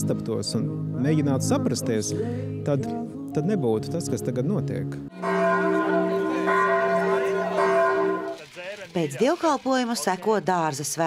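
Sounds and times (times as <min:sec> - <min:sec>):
church bells ringing: 0:05.1 - 0:08.6.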